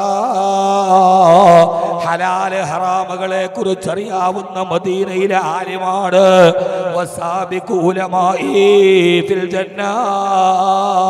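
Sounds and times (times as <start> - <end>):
man chanting in preaching style: 0.0 - 11.0.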